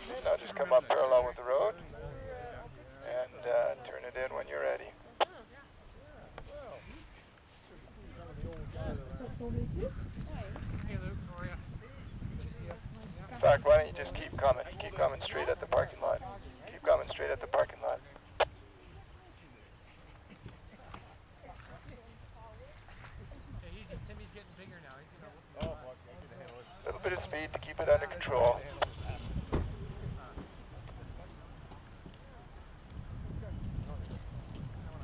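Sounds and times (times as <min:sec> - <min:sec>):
faint distant voices: 0:00.0 - 0:35.0
wind on microphone: 0:08.0 - 0:15.0, 0:21.6 - 0:24.4, 0:28.2 - 0:31.6, 0:32.5 - 0:35.0
person talking: 0:26.9 - 0:28.8.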